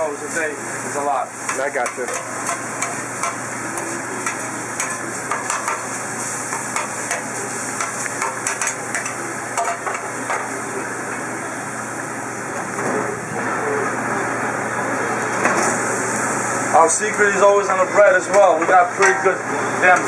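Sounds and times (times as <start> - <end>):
meat sizzling on a griddle: 0.0 - 11.5
metal spatulas clacking on steel: 7.8 - 10.0.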